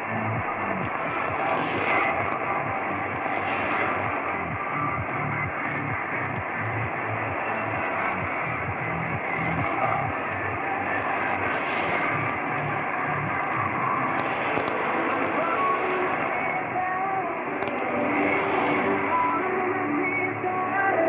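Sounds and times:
low pulsing beat: 0.0 - 14.7
muffled radio music: 0.0 - 21.0
static hiss: 0.0 - 21.0.

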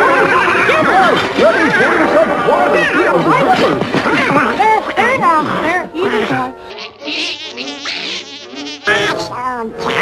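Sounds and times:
soft background music: 0.0 - 10.0
cartoon fly buzzing: 4.3 - 10.0.

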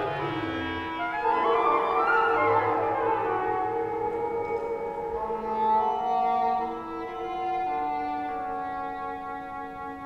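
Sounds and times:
woodwind and percussion ensemble: 0.0 - 10.0.

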